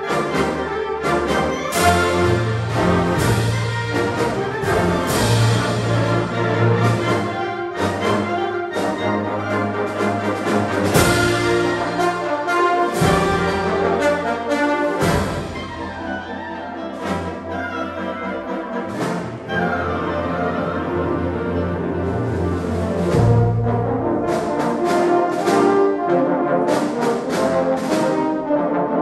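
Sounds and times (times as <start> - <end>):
symphonic band playing held chords: 0.0 - 29.0.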